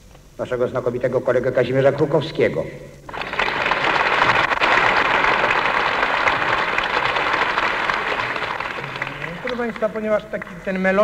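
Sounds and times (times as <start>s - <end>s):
audience applauding: 3.1s - 11.0s.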